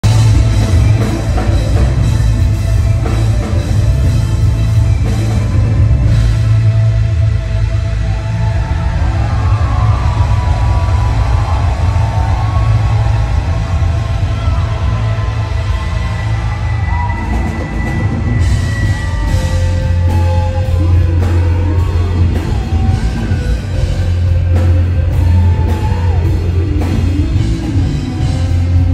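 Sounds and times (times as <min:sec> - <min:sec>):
live rock band music: 0:00.0 - 0:28.9.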